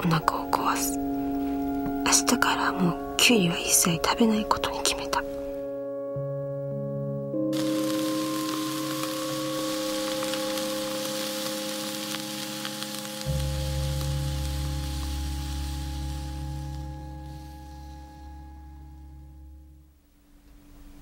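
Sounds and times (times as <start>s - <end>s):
sustained musical drone: 0.0s - 20.0s
cucumbers sizzling in a hot pot: 7.5s - 18.9s.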